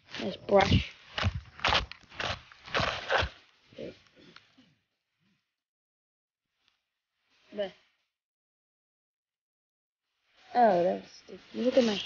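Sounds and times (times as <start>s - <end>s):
dry sticks crunching and snapping: 0.1s - 3.4s.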